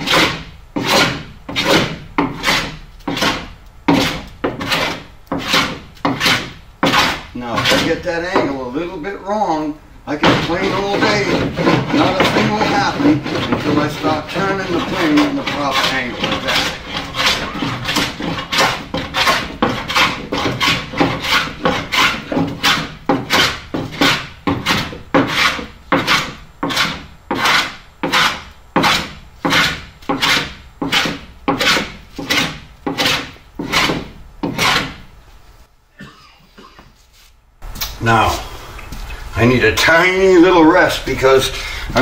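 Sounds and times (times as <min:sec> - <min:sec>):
hand plane rasping wood: 0:00.0 - 0:08.5, 0:10.2 - 0:35.0.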